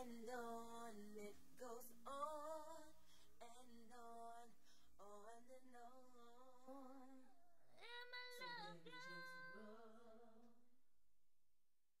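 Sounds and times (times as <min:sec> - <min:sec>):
slowed woman singing a cappella: 0:00.0 - 0:10.7.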